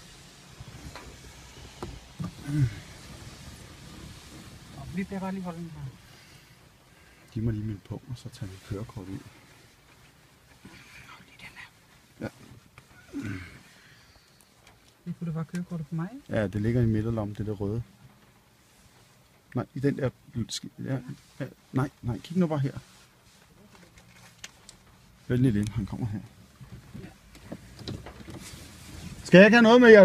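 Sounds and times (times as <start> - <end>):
low hum inside car: 0.0 - 30.0
man speaking: 7.4 - 9.3, 16.3 - 17.9, 19.6 - 22.9, 25.3 - 26.3, 29.2 - 30.0.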